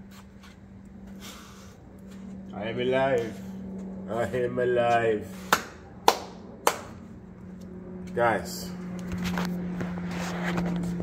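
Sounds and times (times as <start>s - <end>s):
sharp hand claps: 5.5s - 7.0s.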